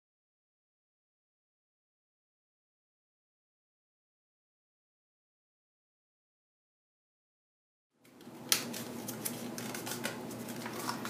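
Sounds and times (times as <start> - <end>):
stiff paper rustling and crackling: 8.5 - 11.0.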